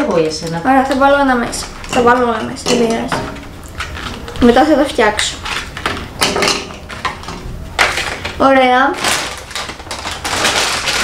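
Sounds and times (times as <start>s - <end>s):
plastic bag rustling: 0.0s - 11.0s.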